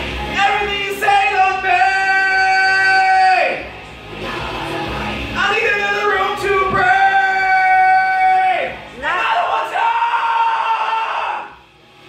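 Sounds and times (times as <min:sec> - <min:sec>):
man screaming into microphone: 0:00.4 - 0:03.6, 0:05.4 - 0:11.6.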